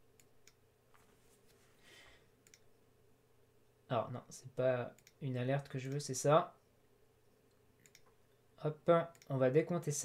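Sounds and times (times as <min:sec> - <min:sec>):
low steady hum: 0:00.0 - 0:10.0
computer mouse clicks: 0:00.1 - 0:00.6, 0:02.4 - 0:02.7, 0:04.9 - 0:05.2, 0:07.5 - 0:08.2, 0:09.1 - 0:09.4.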